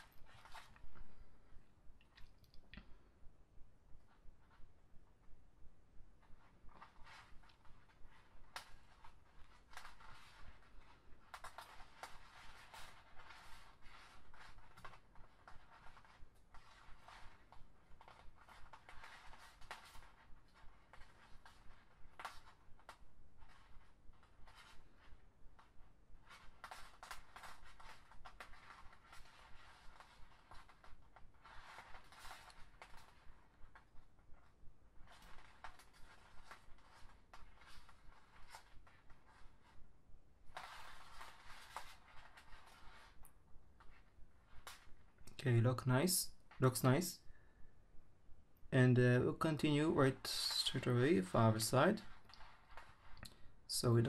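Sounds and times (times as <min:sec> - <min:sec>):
plastic strands rubbing: 0:00.0 - 0:03.1, 0:06.1 - 0:47.7, 0:48.7 - 0:54.0.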